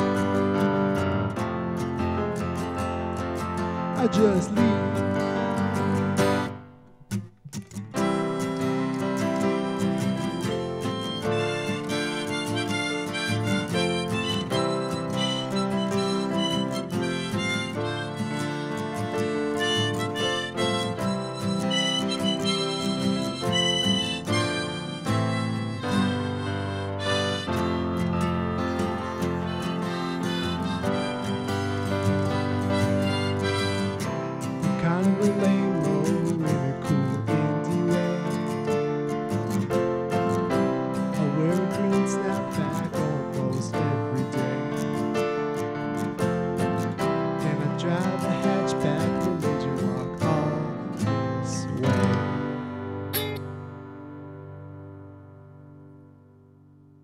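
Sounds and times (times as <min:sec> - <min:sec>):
harmonica: 0:00.0 - 0:06.6, 0:08.0 - 0:53.6
acoustic guitar: 0:00.0 - 0:57.0
digital piano: 0:00.0 - 0:57.0.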